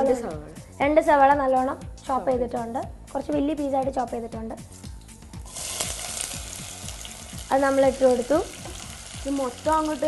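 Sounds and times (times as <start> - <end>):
onions sizzling in hot oil: 5.4 - 10.0.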